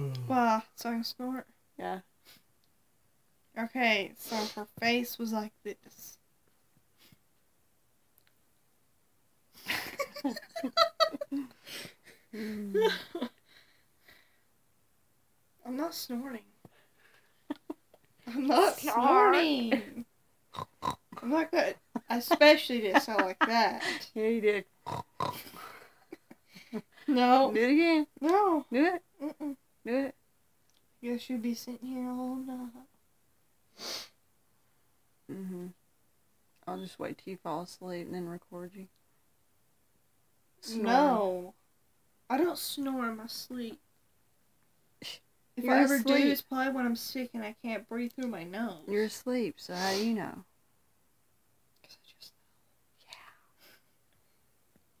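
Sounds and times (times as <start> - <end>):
girl laughing with snorts: 9.6 - 13.4, 25.2 - 27.2
faint whispering: 51.8 - 53.8.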